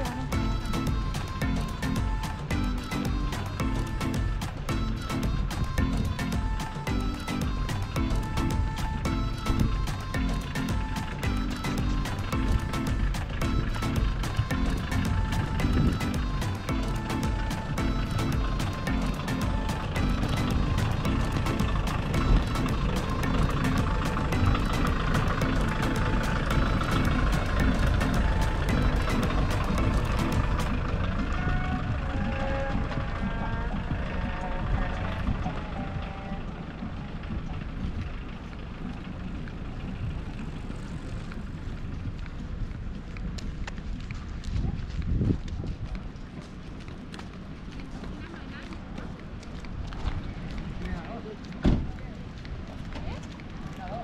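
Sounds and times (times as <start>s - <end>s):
background music: 0.0s - 44.0s
wind rumble on microphone: 10.7s - 54.0s.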